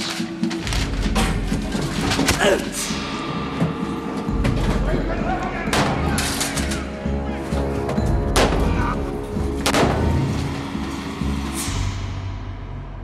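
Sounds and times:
low music drone: 0.0 - 13.0.

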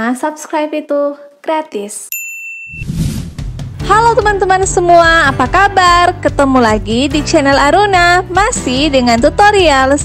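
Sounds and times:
bright ding: 2.1 - 2.9
short swish: 2.7 - 3.7
low background music: 3.3 - 10.0.

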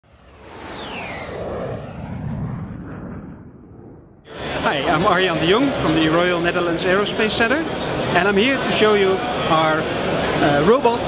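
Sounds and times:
whoosh with whistling tone: 0.0 - 4.1
low rumble: 0.0 - 4.5.

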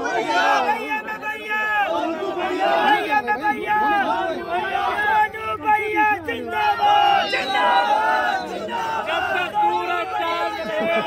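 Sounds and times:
crowd of men shouting and cheering: 0.0 - 11.0.

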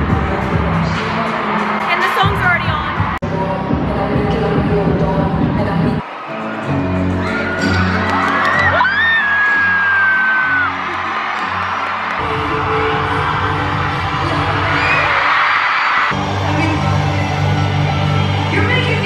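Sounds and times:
crowd cheering: 0.0 - 3.2, 6.0 - 19.0
amplified pop music: 0.0 - 19.0
high-pitched scream: 7.2 - 11.8.

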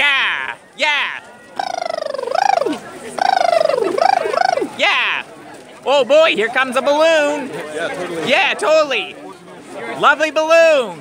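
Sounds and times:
person whooping with excitement: 1.6 - 4.7.

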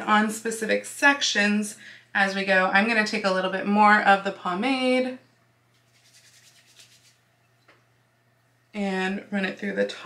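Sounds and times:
palms rubbing together: 5.7 - 7.3.

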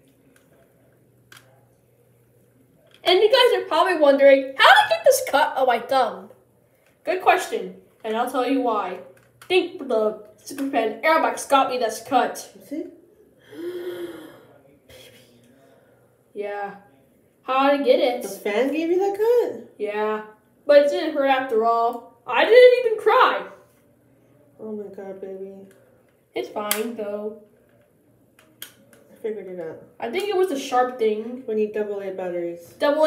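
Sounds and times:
plastic fan click: 28.4 - 28.8.

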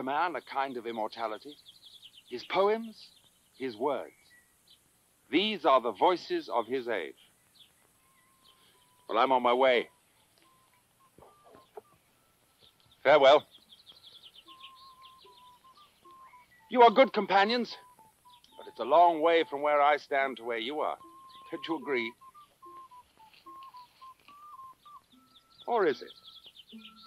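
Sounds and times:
faint bird calls: 0.0 - 27.0
thin high-pitched tune: 14.6 - 26.1.

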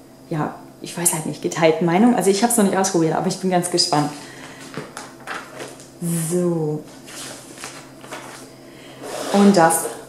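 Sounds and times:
paper rustling: 4.5 - 5.9, 6.8 - 8.5
catalogue pages turning: 4.8 - 5.9, 6.9 - 8.5.

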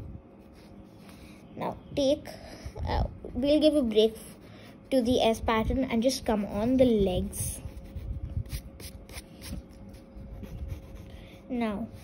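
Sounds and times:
pencil sketching on paper: 3.9 - 5.2, 7.6 - 12.0.

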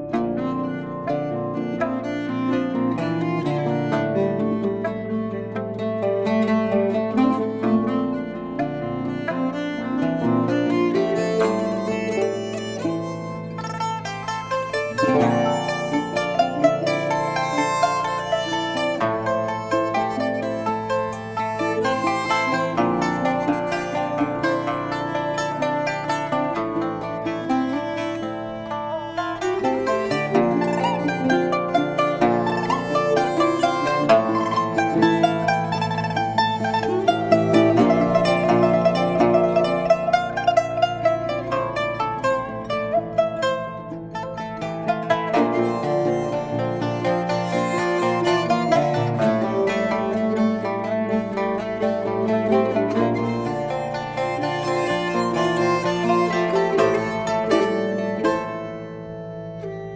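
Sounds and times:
plucked lute melody: 0.0 - 59.9.

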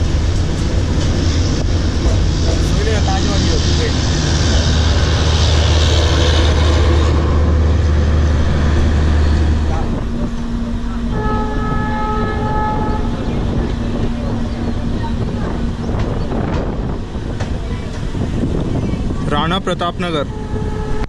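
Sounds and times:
train rumbling: 0.0 - 21.0
wind on microphone: 0.0 - 21.0
train horn blast: 4.0 - 17.1, 20.1 - 21.0.

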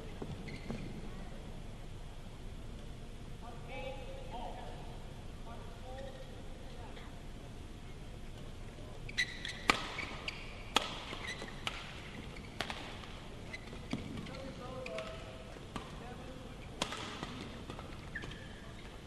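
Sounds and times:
shoes squeaking on court: 0.0 - 1.2, 9.0 - 16.0, 16.6 - 19.0
rackets striking shuttlecock: 9.4 - 14.3, 16.8 - 18.4.

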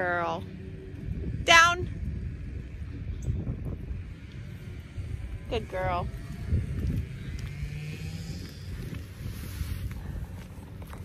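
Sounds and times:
distant lawn mowers droning: 0.0 - 11.0
wind rumbling on microphone: 0.0 - 11.0.

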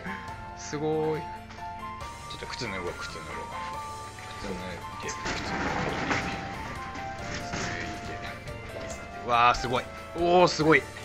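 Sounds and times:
background music with held tones: 0.0 - 11.0
wooden sliding door rattling open: 4.4 - 9.8.

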